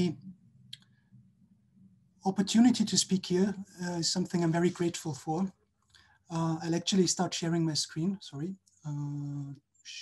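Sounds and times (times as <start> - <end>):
spoken word: 2.3 - 5.5, 6.3 - 10.0.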